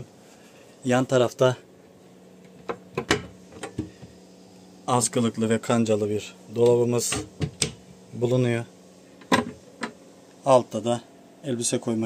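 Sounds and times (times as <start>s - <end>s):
wooden cabinet door clicks and knocks: 7.2s - 7.8s.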